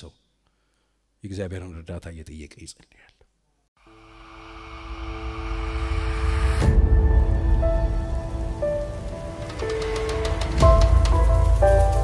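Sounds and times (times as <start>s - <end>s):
low rumbling riser: 3.9s - 12.0s.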